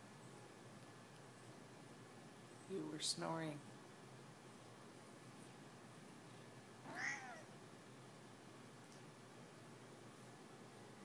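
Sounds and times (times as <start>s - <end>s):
cat meowing: 6.9s - 7.5s.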